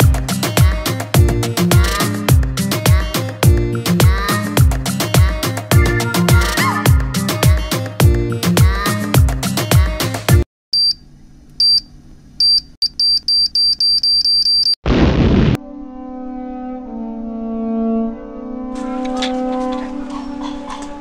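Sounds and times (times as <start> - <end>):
explosion blast: 14.8 - 15.6
low music chord: 15.6 - 20.1.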